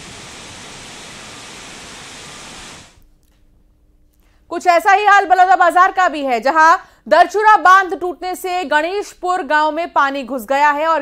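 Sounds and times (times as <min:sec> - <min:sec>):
water rushing hiss: 0:00.0 - 0:03.0.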